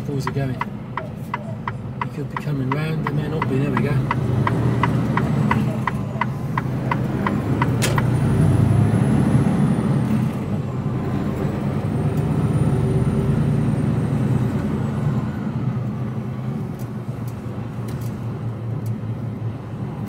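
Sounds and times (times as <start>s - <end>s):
diesel truck engine: 0.0s - 20.0s.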